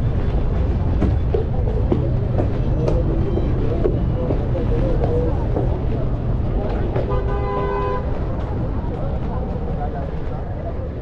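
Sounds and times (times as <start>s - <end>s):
city street traffic rumbling: 0.0s - 11.0s
voices of passers-by: 0.0s - 11.0s
vehicle horn: 7.0s - 8.1s.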